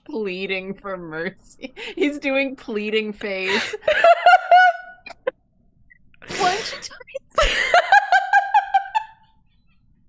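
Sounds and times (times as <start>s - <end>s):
woman's high-pitched laugh: 3.8s - 5.3s, 7.4s - 9.3s.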